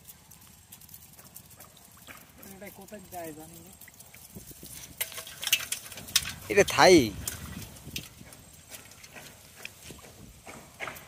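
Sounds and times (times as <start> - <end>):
light taps and drips into pot: 1.2 - 10.2.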